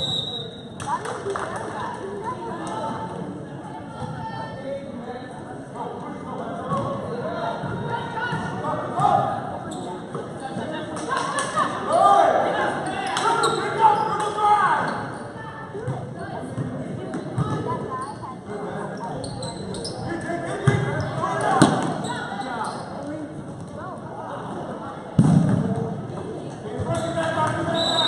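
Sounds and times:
voices and shouts echoing: 0.0 - 28.0.

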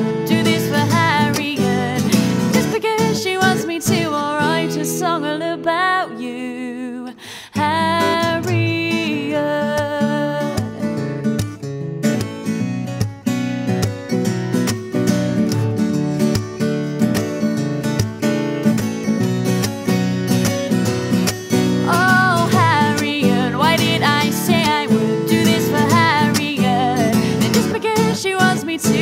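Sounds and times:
woman singing: 0.0 - 11.1, 21.7 - 29.0
acoustic guitar playing: 0.0 - 29.0.

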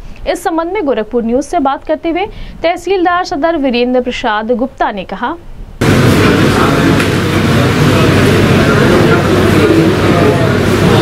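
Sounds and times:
steady low hum: 0.0 - 11.0
crowd of people talking: 5.8 - 11.0.

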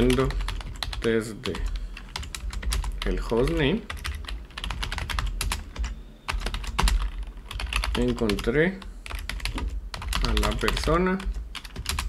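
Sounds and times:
keyboard typing: 0.0 - 12.0.

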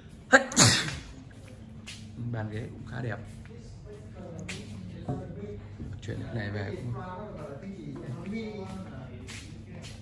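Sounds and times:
person sneezing: 0.4 - 1.2.

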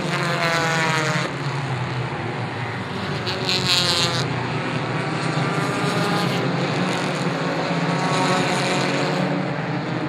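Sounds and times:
race car engines at high revs: 0.0 - 10.0.

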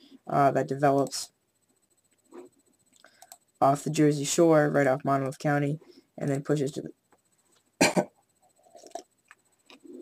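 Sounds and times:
soft clicks: 2.9 - 3.4
man coughing: 7.8 - 8.2
faint mouth and throat noises: 8.5 - 10.0.

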